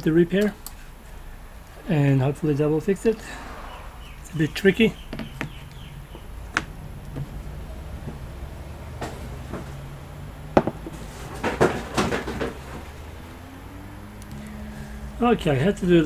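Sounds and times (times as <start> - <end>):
sharp clicks and knocks: 10.6 - 13.2.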